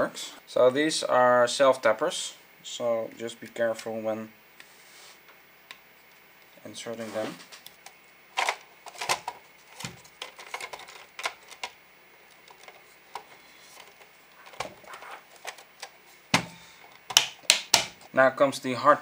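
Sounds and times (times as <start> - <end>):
plastic parts knocking and clicking: 8.4 - 11.8, 12.4 - 18.0.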